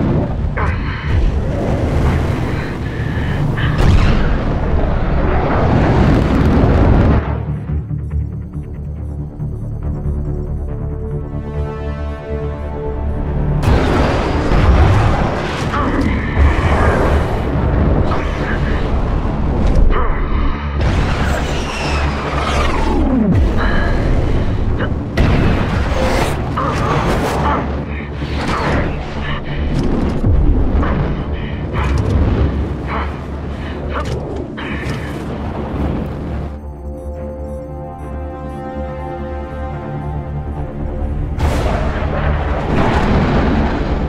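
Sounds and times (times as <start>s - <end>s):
film music score: 0.0s - 44.0s
sudden booms and hits: 41.3s - 44.0s.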